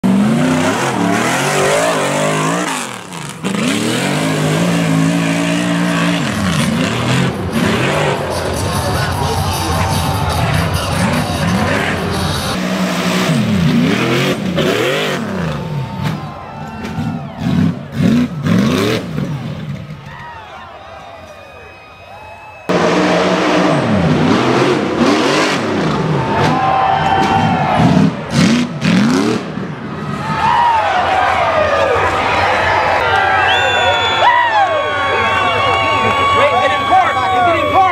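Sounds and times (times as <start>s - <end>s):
buggy engine revving hard: 0.0s - 8.8s, 10.9s - 16.2s, 17.0s - 19.9s, 22.7s - 26.6s, 27.4s - 30.0s.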